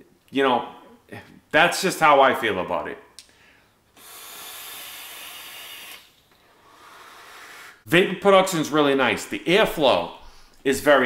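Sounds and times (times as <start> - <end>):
hiss of air drawn through vaporizer: 4.0 - 7.8.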